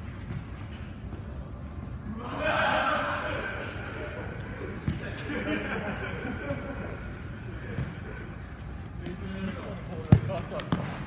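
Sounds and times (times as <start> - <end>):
players calling out: 2.0 - 9.7.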